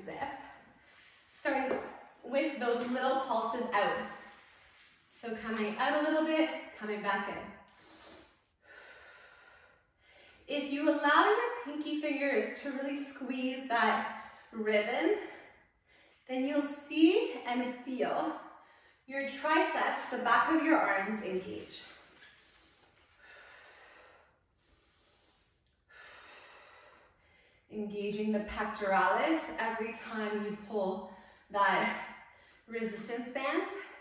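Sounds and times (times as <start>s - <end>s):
woman breathing softly: 22.2s - 27.7s.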